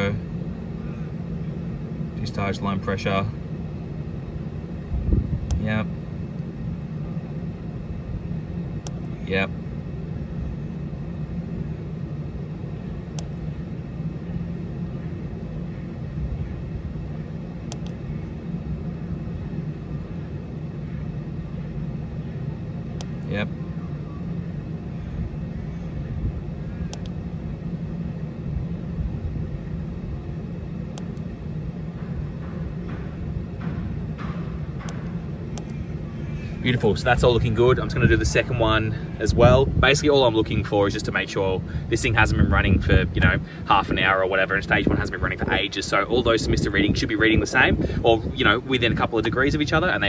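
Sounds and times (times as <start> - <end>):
fan blower humming: 0.0 - 50.0.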